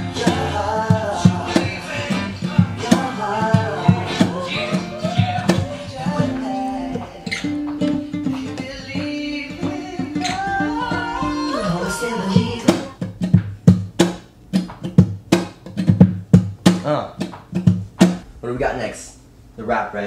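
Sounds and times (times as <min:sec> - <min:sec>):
acoustic guitar picked notes: 0:00.0 - 0:18.2
percussive guitar strumming: 0:00.0 - 0:18.2.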